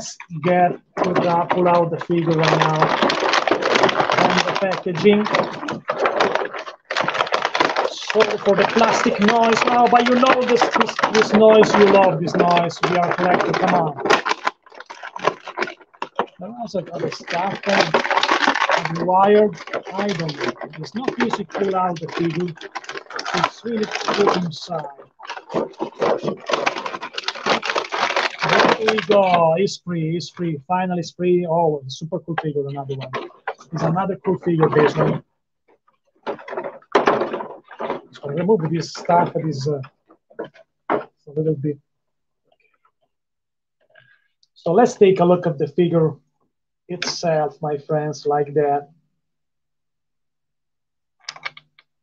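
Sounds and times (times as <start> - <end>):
plastic packaging crinkling: 0.0 - 29.7, 32.3 - 35.2, 36.2 - 41.2, 51.2 - 51.9.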